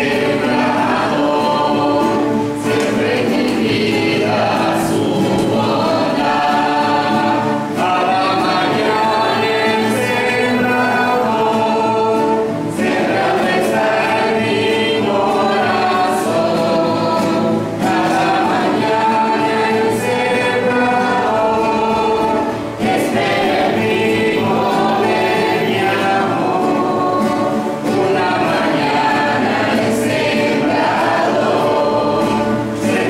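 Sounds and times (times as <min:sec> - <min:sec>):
women singing a hymn: 0:00.0 - 0:33.0.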